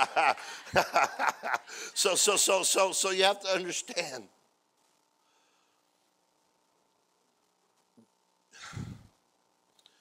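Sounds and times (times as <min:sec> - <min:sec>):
man sighing: 0:08.6 - 0:09.1.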